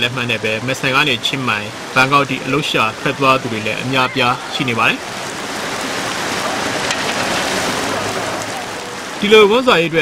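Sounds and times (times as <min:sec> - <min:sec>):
heavy rain on wet road: 0:00.0 - 0:10.0.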